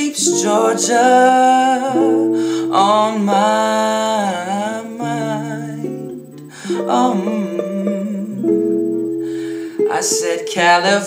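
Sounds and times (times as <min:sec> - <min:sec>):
guitar chords ringing: 0:00.0 - 0:11.0
person singing: 0:00.0 - 0:11.0.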